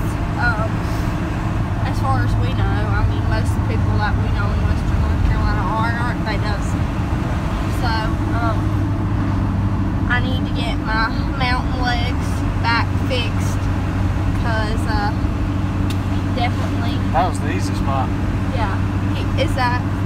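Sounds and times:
indistinct voices talking: 0.0s - 1.1s, 1.7s - 9.1s, 10.0s - 20.0s
road noise: 0.0s - 20.0s
truck engine drone: 0.0s - 20.0s.

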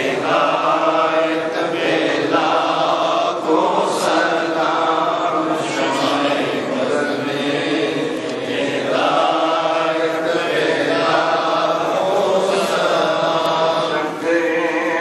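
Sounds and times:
man chanting recitation: 0.0s - 15.0s.

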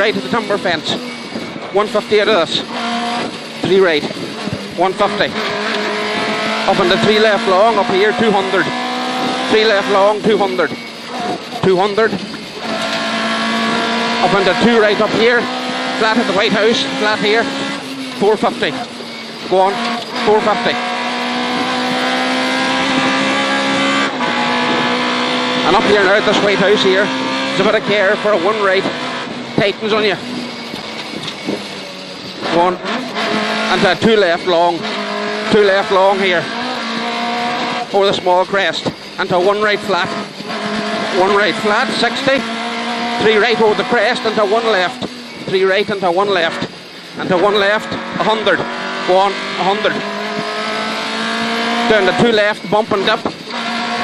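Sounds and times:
car engine at high revs: 0.0s - 54.0s.

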